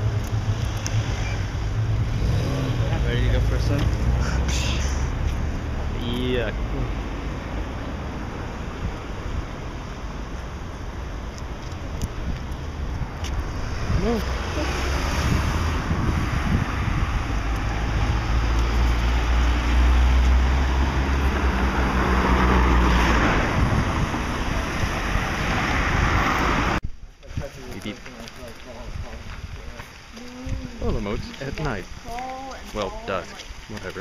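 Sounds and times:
street traffic: 0:00.0 - 0:34.0
wind rumbling on microphone: 0:00.0 - 0:34.0.

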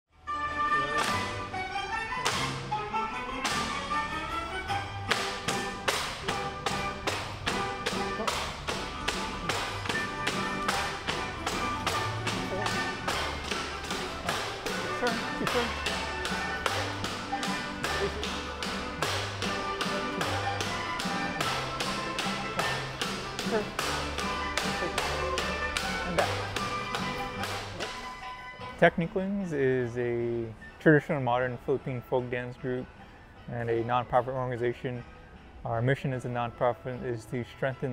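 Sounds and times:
bamboo poles clapping: 0:01.0 - 0:01.3, 0:02.2 - 0:02.6, 0:05.1 - 0:28.1.

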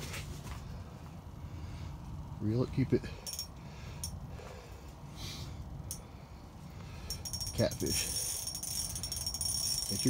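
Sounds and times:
steady low rumble: 0:00.0 - 0:10.0
spinning reel clicks: 0:07.1 - 0:10.0.

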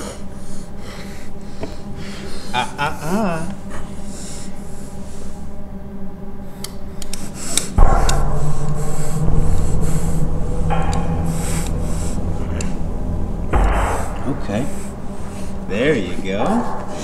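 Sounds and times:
low droning tone: 0:07.8 - 0:17.0.

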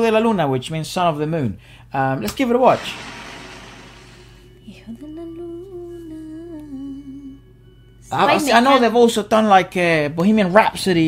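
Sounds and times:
person humming: 0:04.7 - 0:07.4.

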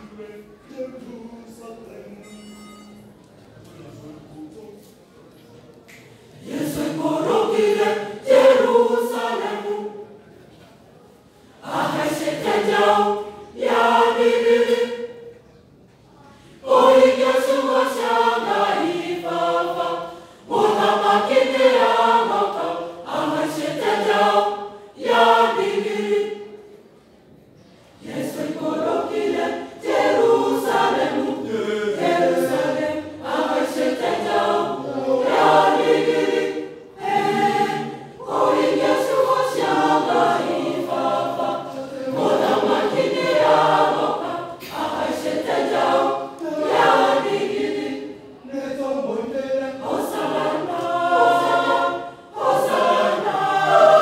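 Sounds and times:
choir singing: 0:05.9 - 0:10.5, 0:11.1 - 0:15.5, 0:16.2 - 0:27.0, 0:27.9 - 0:54.0.

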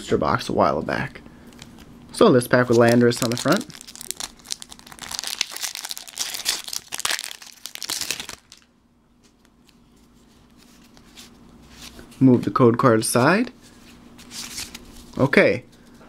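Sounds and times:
foil wrapper crinkling and tearing: 0:02.6 - 0:08.7.

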